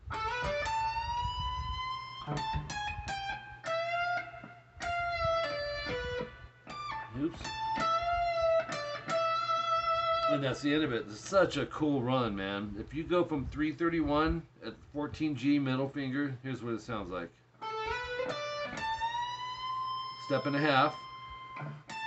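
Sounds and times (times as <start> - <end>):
electric guitar lead: 0.0 - 10.6, 17.6 - 22.0
low amp hum: 0.0 - 16.0.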